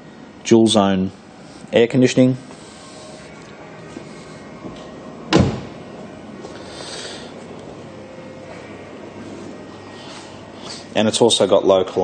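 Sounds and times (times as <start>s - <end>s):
faint background noise: 0.0s - 12.0s
car door shutting: 5.3s - 5.8s.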